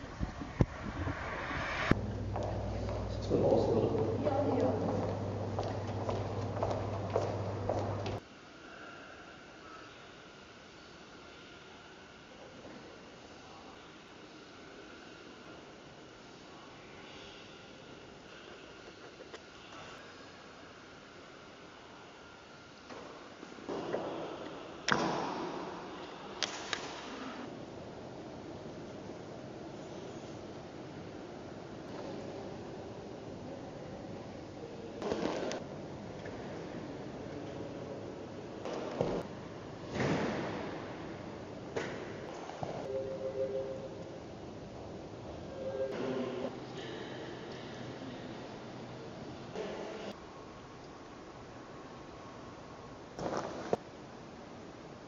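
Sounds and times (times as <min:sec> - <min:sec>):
wind on microphone: 0:00.0 - 0:02.1
sharp knock in a large room: 0:23.0 - 0:27.4.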